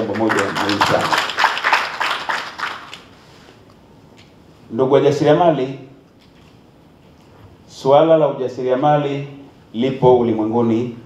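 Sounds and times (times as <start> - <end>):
audience applauding: 0.0 - 3.1.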